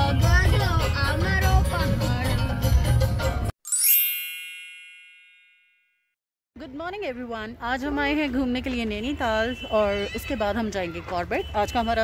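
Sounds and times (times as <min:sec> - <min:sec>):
sparkling chime effect: 0:03.6 - 0:06.0.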